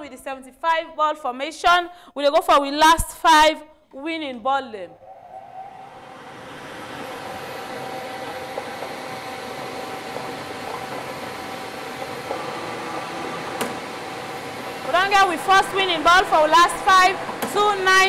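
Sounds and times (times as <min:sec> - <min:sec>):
lottery machine blower running: 0:05.8 - 0:18.0.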